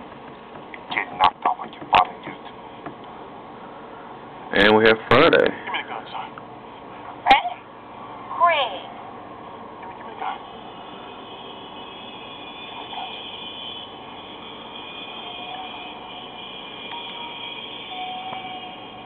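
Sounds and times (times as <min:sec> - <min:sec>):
film soundtrack through small speaker: 0:00.8 - 0:03.1, 0:07.0 - 0:09.1, 0:09.8 - 0:10.6.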